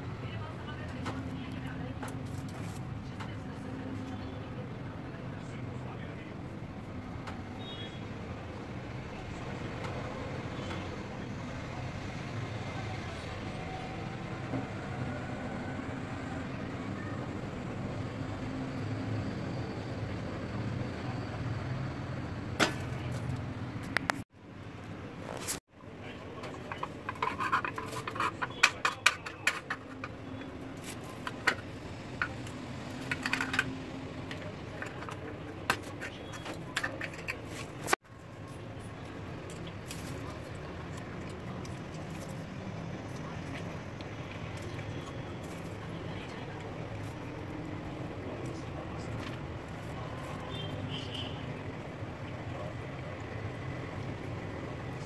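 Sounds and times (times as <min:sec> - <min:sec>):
low background noise: 0:00.0 - 0:55.0.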